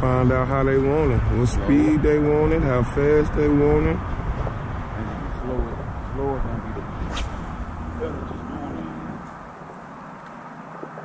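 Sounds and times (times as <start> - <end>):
highway traffic rumble: 0.0 - 11.0.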